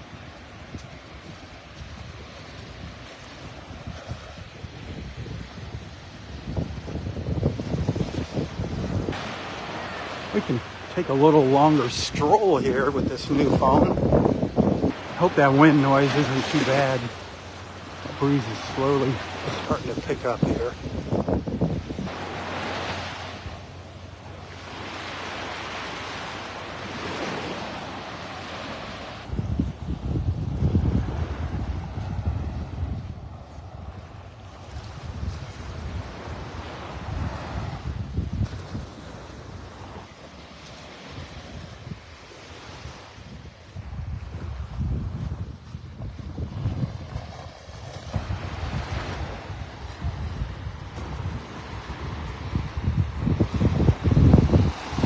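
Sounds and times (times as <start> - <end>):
small waves breaking on beach: 0.0 - 55.0
wind gusting on microphone: 0.0 - 55.0.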